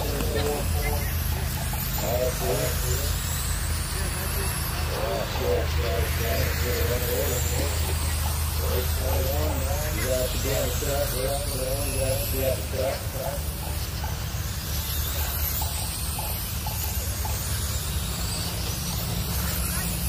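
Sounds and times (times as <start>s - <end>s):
people talking: 0.0s - 14.1s, 15.0s - 20.0s
rc car motors whining: 0.0s - 20.0s
steady low hum: 0.0s - 20.0s.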